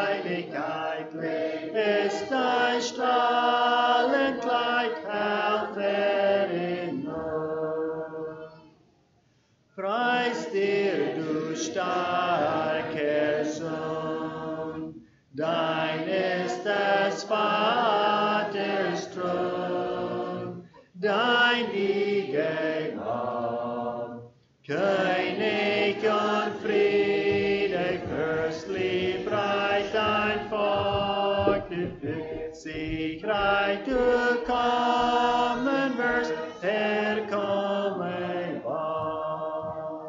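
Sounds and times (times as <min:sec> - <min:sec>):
congregation singing a hymn: 0:00.0 - 0:08.6, 0:09.8 - 0:40.0.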